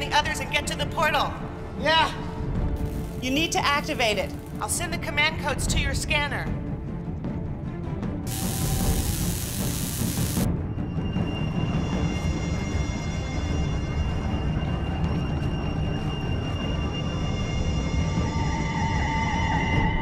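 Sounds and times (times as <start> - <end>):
tense ominous film score: 0.0 - 20.0
sparking hiss: 2.8 - 3.5, 8.3 - 10.5.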